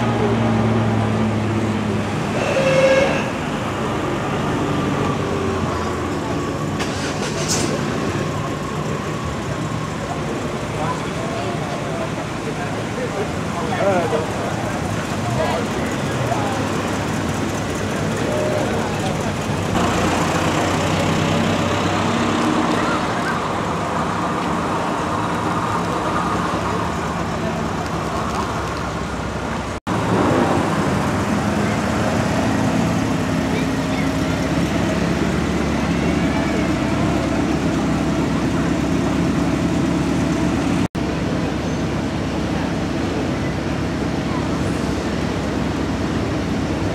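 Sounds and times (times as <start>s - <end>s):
cars driving slowly past: 0.0s - 46.9s
crowd chatter: 0.0s - 46.9s.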